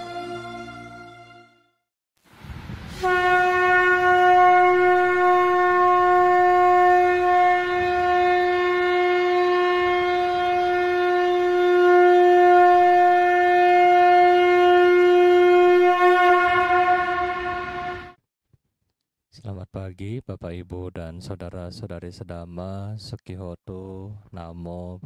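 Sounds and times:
held wind instrument note: 2.9s - 18.2s.

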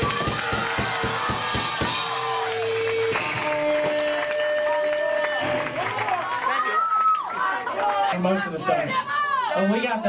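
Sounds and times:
rock drum kit hits: 0.0s - 4.3s
held electric guitar notes: 2.1s - 6.3s.

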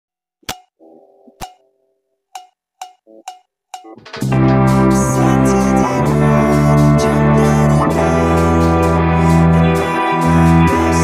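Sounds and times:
metronome clicks: 0.5s - 0.7s, 1.4s - 1.6s, 2.3s - 4.9s
chord: 3.8s - 11.0s.

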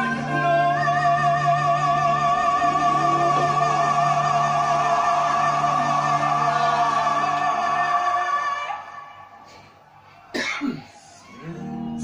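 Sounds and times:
music from tv: 0.0s - 12.0s
person coughing: 10.3s - 10.9s.

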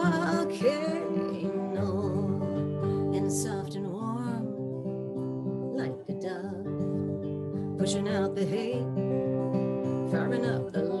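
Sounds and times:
acoustic guitar strumming chords: 0.0s - 11.0s.

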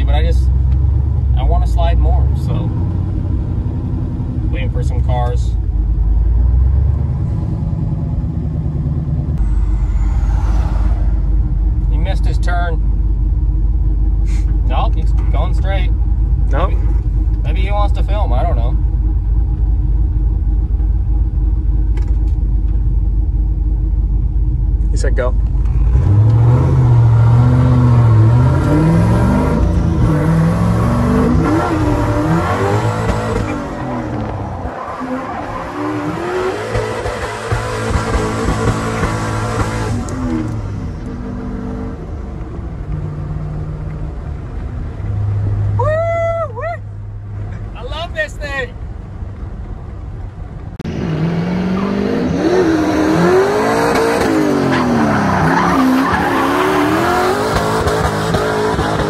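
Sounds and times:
truck engine idling and revving: 0.0s - 59.0s
tyre squeal: 9.4s - 11.4s, 54.6s - 57.4s.

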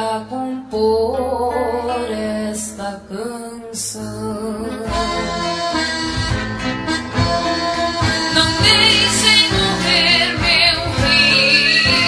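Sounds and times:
person singing: 0.0s - 12.0s
band playing instrumental passage: 4.8s - 12.0s.

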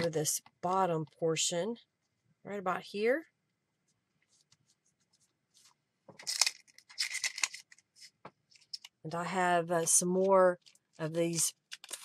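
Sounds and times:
paper rustling and scraping: 4.3s - 8.9s.

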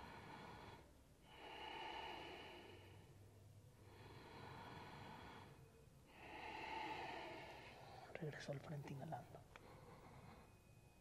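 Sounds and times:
slow deep breathing: 0.0s - 8.3s, 9.4s - 11.0s.

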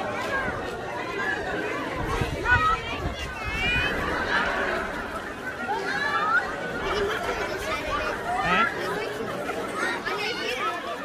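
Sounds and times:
several people talking: 0.0s - 11.0s.

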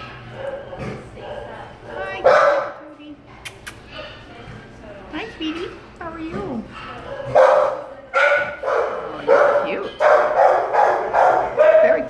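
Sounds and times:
dog barking: 0.3s - 2.8s, 7.0s - 12.0s.

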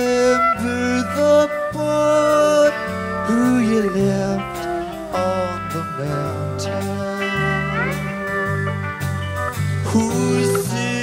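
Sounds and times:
country-rock band playing: 0.0s - 11.0s
pedal steel guitar: 0.0s - 11.0s.

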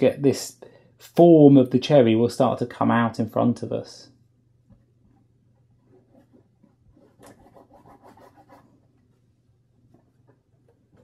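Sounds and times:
low steady hum: 0.0s - 11.0s
paintbrush scratching on canvas: 5.1s - 9.1s.

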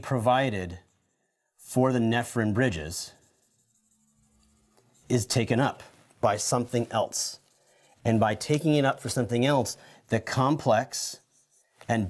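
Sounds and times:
marker scratching on whiteboard: 0.0s - 12.0s.

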